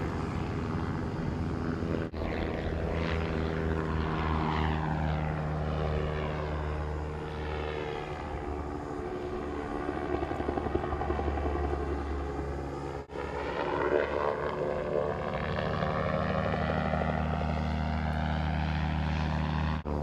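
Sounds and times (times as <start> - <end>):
gyroplane engine and propeller drone: 0.0 - 20.0.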